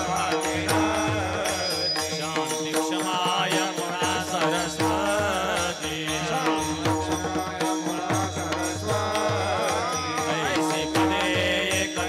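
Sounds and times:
man singing into microphone: 0.0s - 12.0s.

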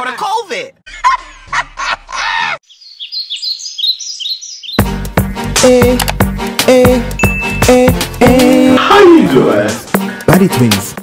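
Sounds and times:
woman laughing: 0.9s - 2.6s
birds chirping: 1.0s - 8.7s.

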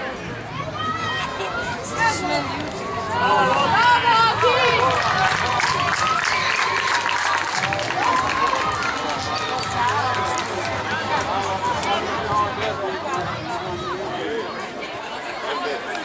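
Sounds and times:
children and people shouting: 0.5s - 12.0s.

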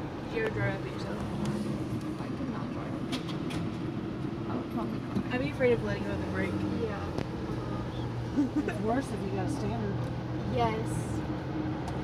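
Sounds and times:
car engine low hum: 0.0s - 12.0s.

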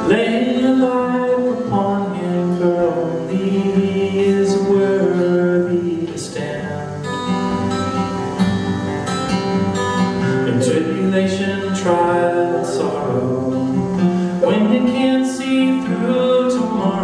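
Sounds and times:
man singing: 0.0s - 7.2s, 10.3s - 17.0s
acoustic guitar strumming: 0.0s - 17.0s.

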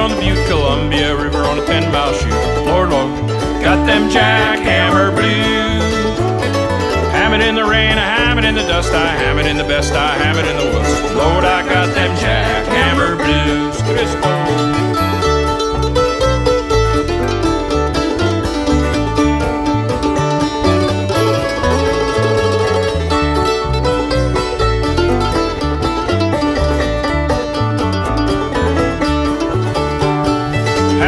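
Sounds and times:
banjo: 0.0s - 31.0s
bass beat: 0.0s - 31.0s
guitar: 0.0s - 31.0s
mandolin: 0.0s - 31.0s.

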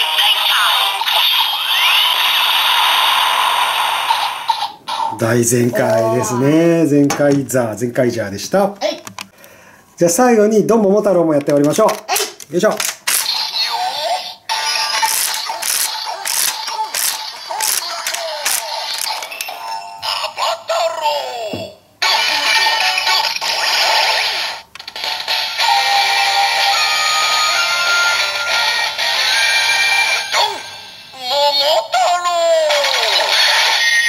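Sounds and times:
toy call-out voice: 0.0s - 2.5s, 13.2s - 24.6s, 25.6s - 34.0s
fanfare-style toy music: 13.2s - 21.0s, 22.0s - 34.0s.

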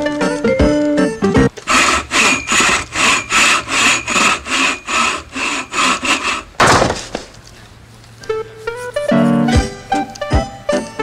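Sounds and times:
rasping sawing strokes: 1.5s - 6.6s.

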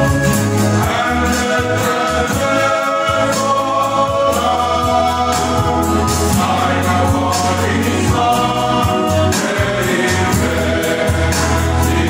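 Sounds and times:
male choir singing a hymn: 0.0s - 12.0s
strummed acoustic guitars: 0.0s - 12.0s.

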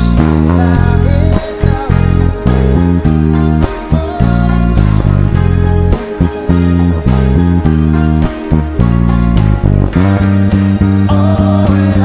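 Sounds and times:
electric bass guitar fingerstyle: 0.0s - 12.0s
song recording: 0.0s - 12.0s.

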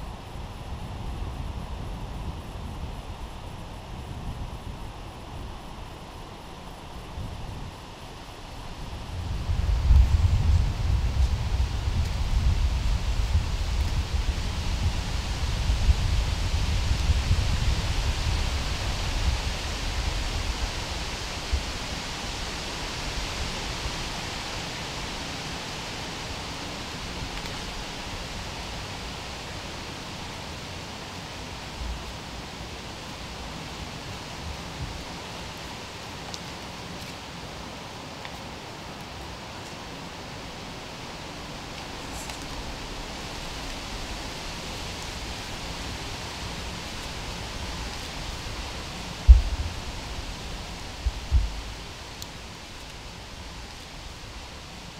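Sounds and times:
wind rumble on microphone: 0.0s - 54.9s
wind rushing through trees: 0.0s - 54.9s
faint ticks: 36.2s - 37.2s, 52.2s - 53.0s.

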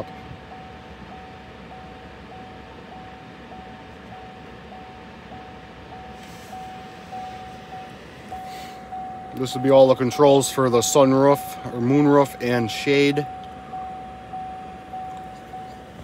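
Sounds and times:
car warning chime: 0.0s - 16.0s
low cabin hum: 0.0s - 16.0s.

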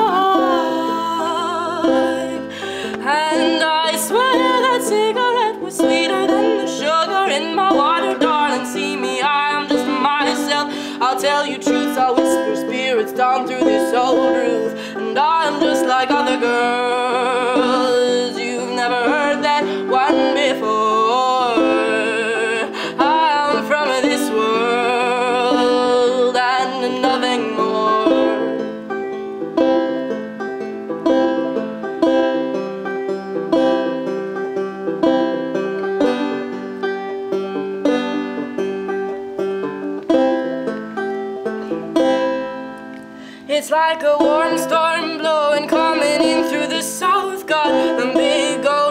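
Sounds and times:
person singing: 0.0s - 30.2s, 43.2s - 48.9s
banjo picking: 0.0s - 48.9s.

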